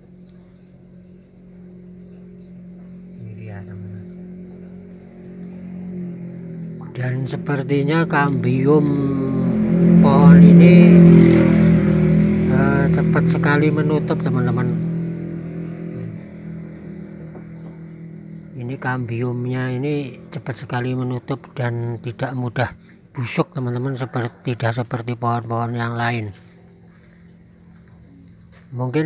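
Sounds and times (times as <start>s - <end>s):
low machine hum: 0.0s - 29.0s
motor engine running: 0.0s - 29.0s.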